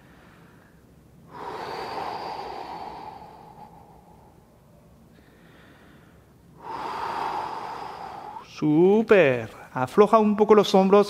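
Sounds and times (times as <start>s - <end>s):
man breathing deeply: 0.0s - 8.6s.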